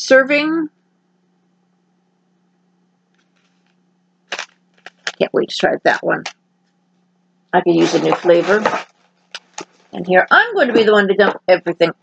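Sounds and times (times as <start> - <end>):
foil packet crinkling: 4.3 - 5.2
sharp foil crackle: 4.3 - 5.2.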